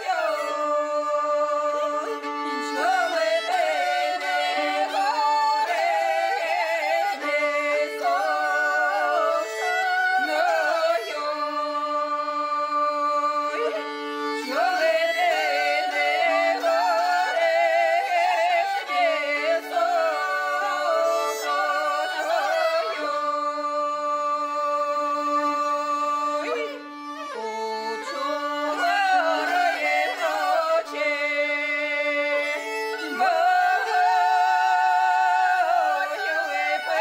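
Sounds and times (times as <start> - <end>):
women singing in harmony: 0.0 - 26.8, 27.4 - 37.0
fiddle: 0.0 - 37.0.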